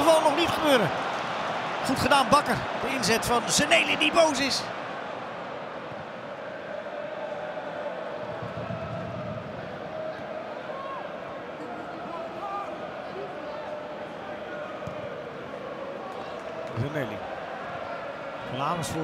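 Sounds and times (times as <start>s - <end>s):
stadium crowd voices: 0.0s - 19.0s.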